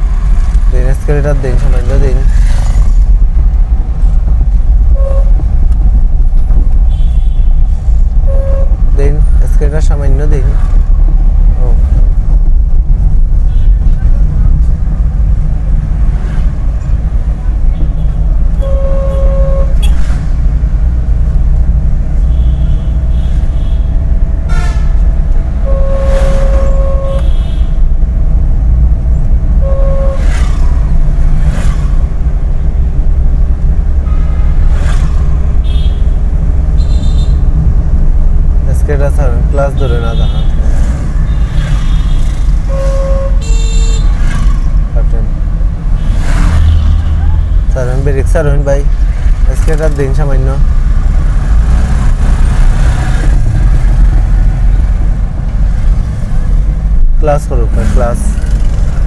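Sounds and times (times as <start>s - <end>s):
car engine and road rumble: 0.0s - 59.0s
vehicle horn toots: 4.9s - 5.4s, 8.2s - 8.8s, 17.8s - 20.0s, 24.5s - 25.0s, 25.6s - 27.8s, 29.6s - 30.3s, 36.8s - 37.4s, 41.3s - 44.2s.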